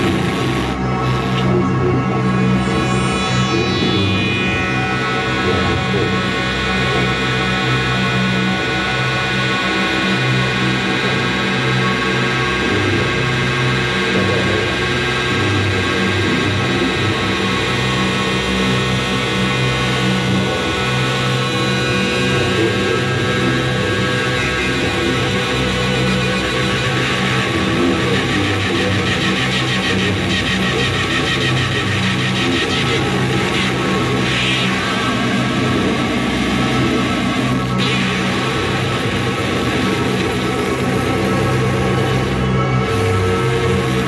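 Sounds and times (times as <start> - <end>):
electric guitar drone music: 0.0 - 44.0.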